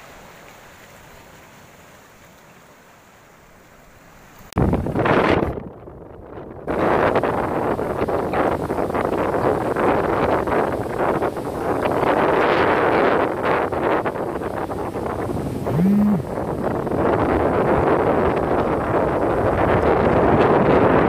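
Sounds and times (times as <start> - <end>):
surf breaking on shore: 0.0 - 5.6, 6.7 - 21.0
wind buffeting microphone: 4.5 - 21.0
person humming: 15.7 - 16.4.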